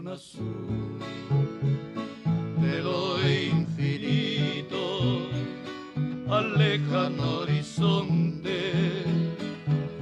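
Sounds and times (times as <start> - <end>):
acoustic guitar bass notes and chords: 0.0 - 10.0
voices singing: 2.6 - 9.3.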